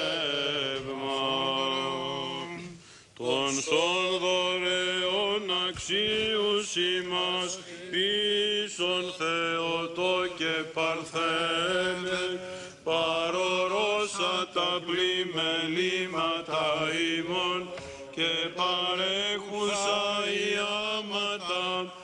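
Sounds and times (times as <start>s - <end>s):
men singing slow chant: 0.0s - 22.0s.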